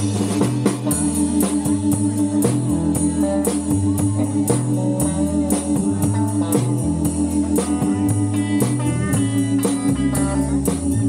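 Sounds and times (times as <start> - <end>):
bass line: 0.0 - 11.0
drum kit beat: 0.0 - 11.0
electric guitar: 0.0 - 11.0
keyboard: 0.0 - 11.0.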